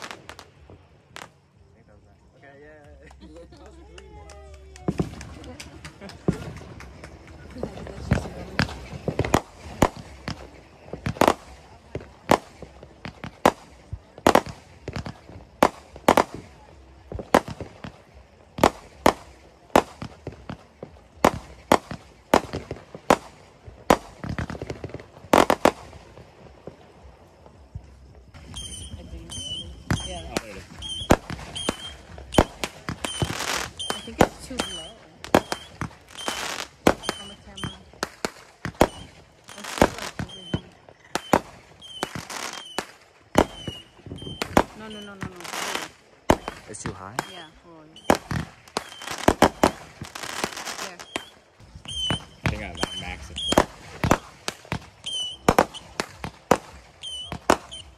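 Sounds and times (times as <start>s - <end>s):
fireworks bangs and pops: 0.0s - 57.9s
fireworks crackle: 0.0s - 57.9s.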